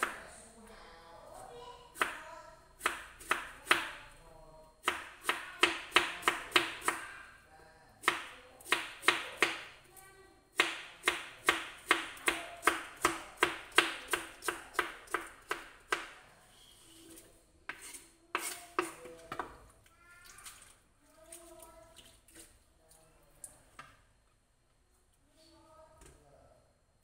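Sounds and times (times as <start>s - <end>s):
knife chopping on plastic board: 4.8s - 7.1s, 8.0s - 9.7s, 10.6s - 16.2s.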